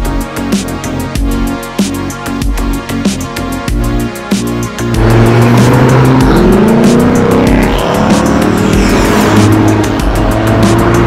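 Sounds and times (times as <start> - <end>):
cars accelerating past: 4.9 - 11.0.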